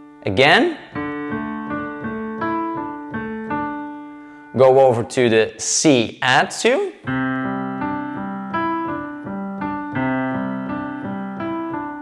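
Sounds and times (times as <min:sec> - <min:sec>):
digital piano arpeggio: 0:00.8 - 0:05.0, 0:07.0 - 0:12.0.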